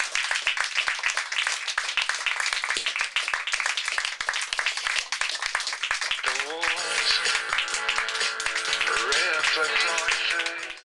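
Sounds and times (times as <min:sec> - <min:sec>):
audience clapping: 0:00.0 - 0:10.9.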